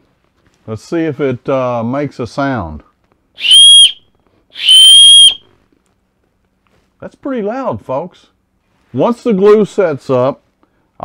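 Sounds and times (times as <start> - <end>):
whistle blasts: 3.4 - 5.5.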